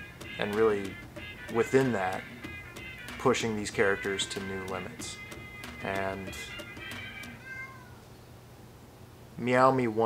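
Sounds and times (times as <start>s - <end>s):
cat meowing: 6.4s - 8.1s.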